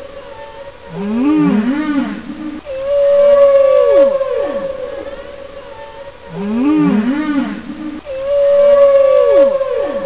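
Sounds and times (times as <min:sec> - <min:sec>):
whale song moaning: 0:00.9 - 0:10.0.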